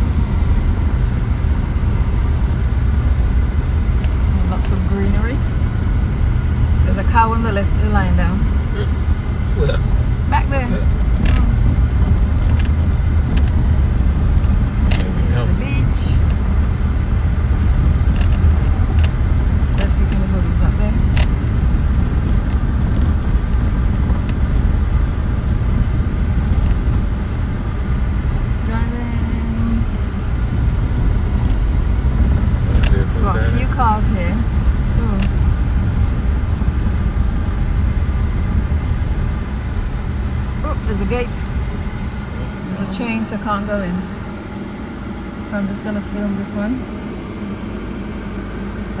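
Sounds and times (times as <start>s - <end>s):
car cabin engine and road rumble: 0.0s - 49.0s.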